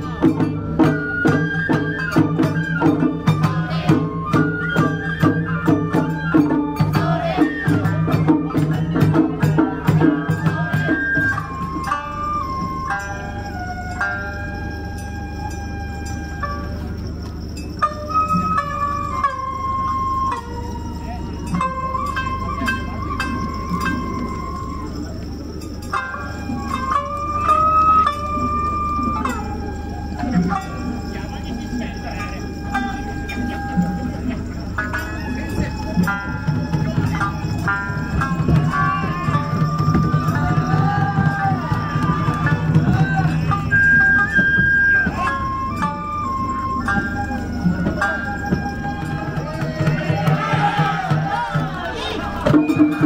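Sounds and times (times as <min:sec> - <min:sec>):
bamboo flute playing: 0:00.0 - 0:53.0.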